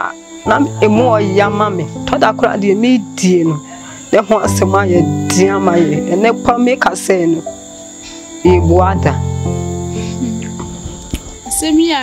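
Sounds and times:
crickets trilling: 0.0 - 12.0
soft background music: 0.0 - 12.0.

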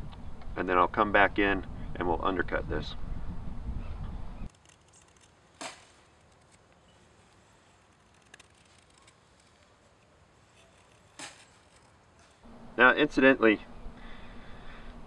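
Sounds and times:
low steady rumble: 0.0 - 4.5, 11.7 - 15.0.

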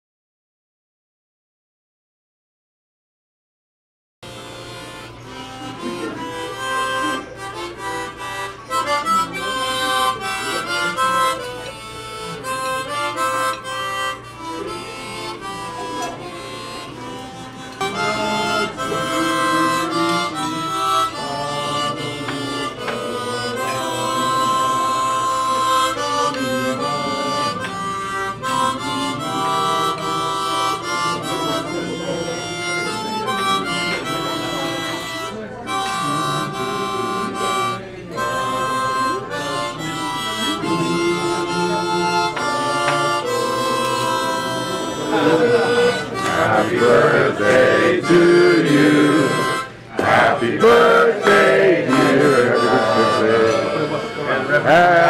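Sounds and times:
harmonica melody: 4.2 - 55.0.

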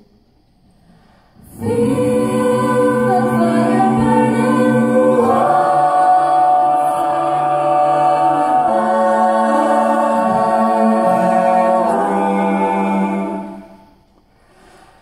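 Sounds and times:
choir singing a cappella: 1.3 - 14.6.

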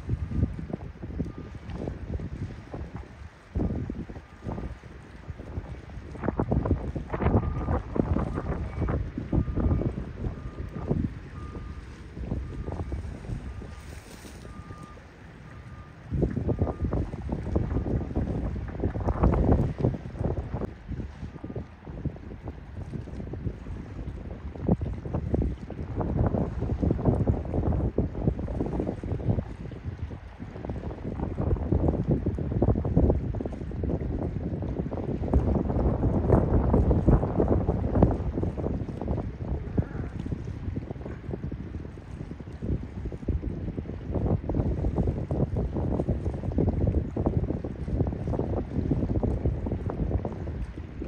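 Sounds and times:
wind buffeting microphone: 0.0 - 51.0
faint short beeps: 7.4 - 17.0.

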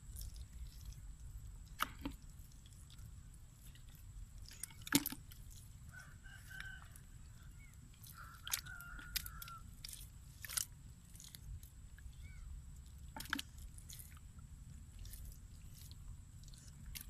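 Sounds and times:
hands squelching in wet mud: 0.0 - 17.0
distant bird calling: 5.9 - 9.6, 12.1 - 12.5.

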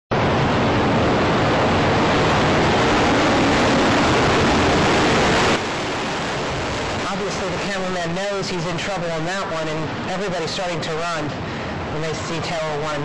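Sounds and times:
building collapsing roaring rumble: 0.1 - 13.0
steady rush: 0.1 - 13.0.

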